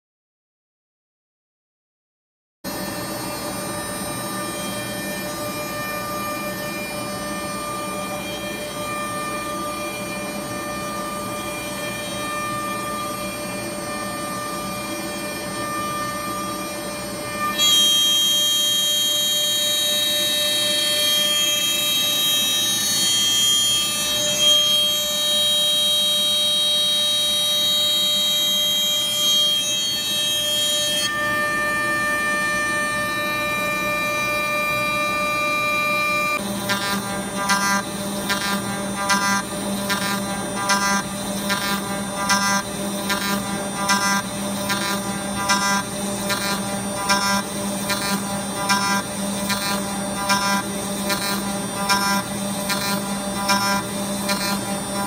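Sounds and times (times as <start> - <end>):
router bit milling wood: 2.7 - 55.0
router spindle whining: 2.7 - 55.0.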